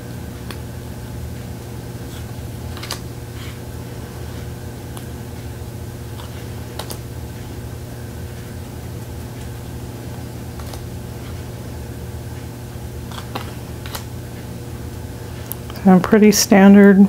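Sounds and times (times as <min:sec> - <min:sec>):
air conditioner running: 0:00.0 - 0:17.0
cards sliding in hand: 0:02.0 - 0:05.0, 0:06.1 - 0:07.0, 0:10.5 - 0:11.5, 0:13.1 - 0:14.1.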